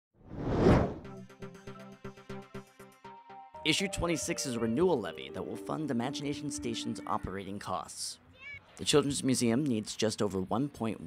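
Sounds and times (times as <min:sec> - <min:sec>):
whoosh sound effect: 0:00.3 - 0:01.1.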